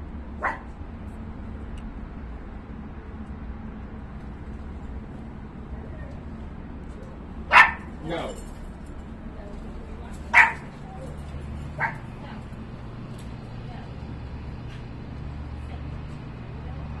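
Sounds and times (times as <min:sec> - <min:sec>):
steady low hum: 0:00.0 - 0:17.0
dog barking: 0:00.4 - 0:00.7, 0:07.5 - 0:08.0, 0:10.3 - 0:10.8, 0:11.7 - 0:12.1.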